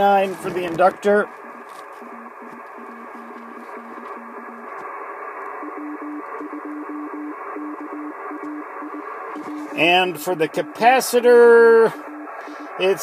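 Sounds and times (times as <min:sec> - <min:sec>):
morse code tones: 0:00.0 - 0:13.0
radio band hiss: 0:00.0 - 0:13.0.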